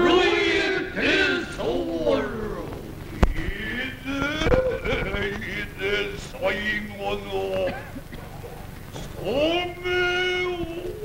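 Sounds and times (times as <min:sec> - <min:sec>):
man chanting: 0:00.0 - 0:07.9, 0:09.0 - 0:11.0.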